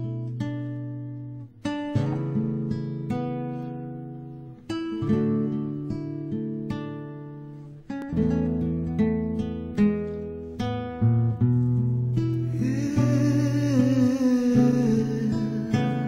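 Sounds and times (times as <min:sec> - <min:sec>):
acoustic guitar slow chords: 0:00.0 - 0:16.0.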